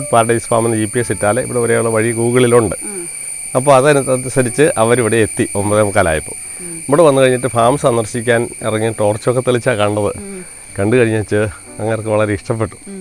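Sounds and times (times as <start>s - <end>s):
high-pitched insect chorus: 0.0s - 13.0s
people talking: 0.0s - 13.0s.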